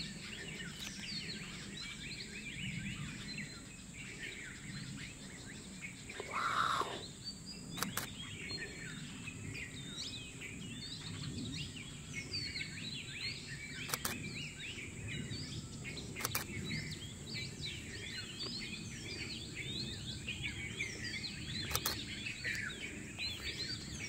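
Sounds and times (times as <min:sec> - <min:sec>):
birds chirping: 0:00.0 - 0:24.0
sharp clicks: 0:07.7 - 0:08.2, 0:13.8 - 0:14.2, 0:16.2 - 0:16.5, 0:21.6 - 0:22.6.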